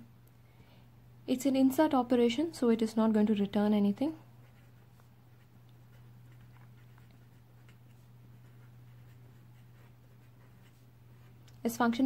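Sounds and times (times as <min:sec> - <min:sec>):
marker scratching on paper: 0:04.3 - 0:11.4.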